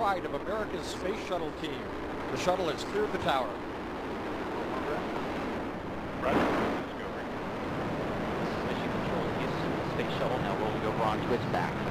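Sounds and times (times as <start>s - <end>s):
rocket engines roaring: 0.0s - 11.9s.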